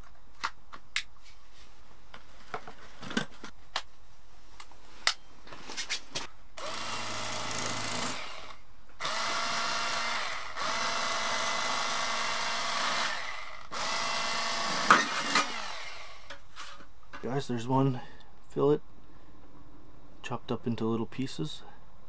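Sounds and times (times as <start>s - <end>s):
electric fillet knife running: 6.6s - 16.2s.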